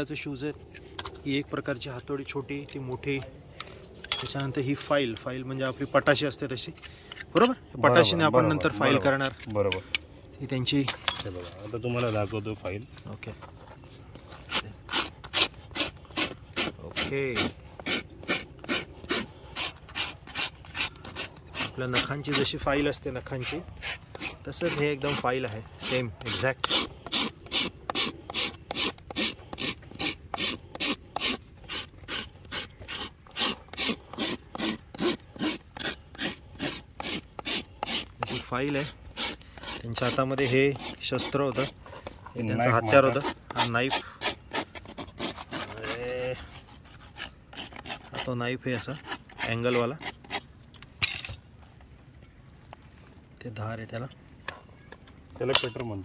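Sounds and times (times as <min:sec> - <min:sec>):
rasp filing a hoof: 0:00.3 - 0:09.9, 0:11.6 - 0:50.8
metal tools clinking: 0:03.6 - 0:05.3, 0:10.8 - 0:13.2, 0:51.0 - 0:51.5, 0:55.4 - 0:56.0.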